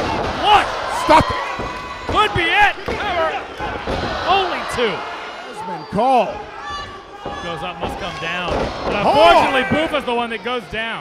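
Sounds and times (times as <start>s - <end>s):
loud shouting voices: 0.0s - 10.9s.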